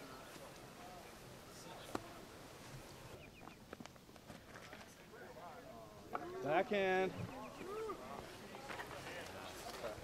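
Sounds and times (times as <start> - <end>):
light outdoor noise: 0.0 - 10.0
people talking in background: 0.0 - 10.0.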